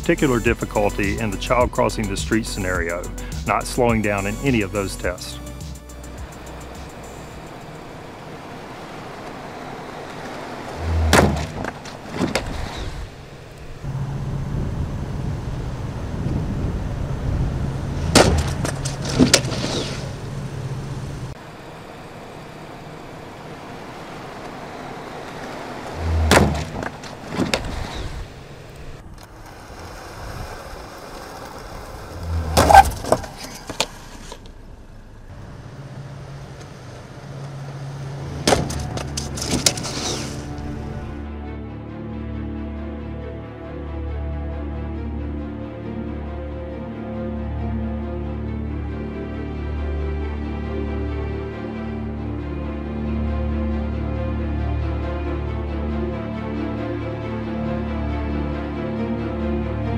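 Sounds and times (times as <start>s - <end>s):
car driving hum: 0.0s - 41.3s
sharp knocks and low thuds: 10.8s - 12.7s, 18.0s - 19.6s, 26.0s - 27.8s.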